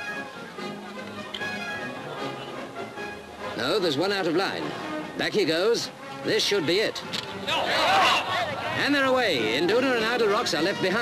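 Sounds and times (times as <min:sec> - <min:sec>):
orchestral string music: 0:00.0 - 0:11.0.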